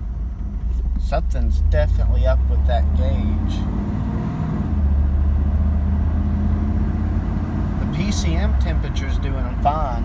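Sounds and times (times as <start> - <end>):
car engine drone from inside cabin: 0.0 - 10.0.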